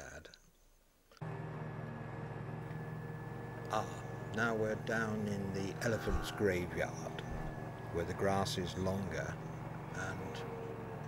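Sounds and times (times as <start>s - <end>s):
ride-on mower engine running: 1.2s - 11.0s
thin high whine: 2.6s - 10.4s.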